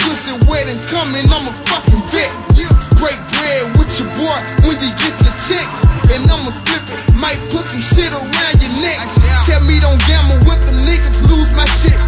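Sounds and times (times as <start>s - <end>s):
man rapping: 0.0s - 12.0s
deep kick drum beat: 1.3s - 3.1s, 3.8s - 7.3s, 7.9s - 12.0s.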